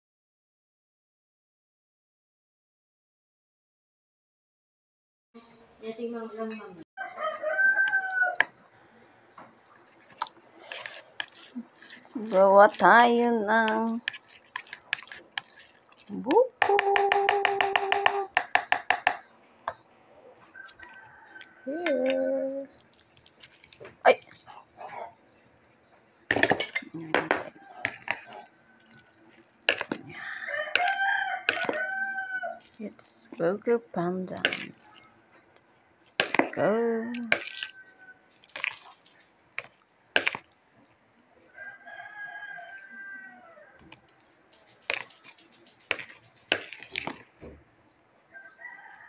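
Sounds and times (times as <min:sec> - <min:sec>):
rooster crowing: 0:07.0 - 0:08.5, 0:30.1 - 0:32.7, 0:37.5 - 0:38.3, 0:41.5 - 0:43.9, 0:48.3 - 0:49.0
metal spoon scraping a bowl: 0:10.6 - 0:15.7, 0:44.8 - 0:47.2.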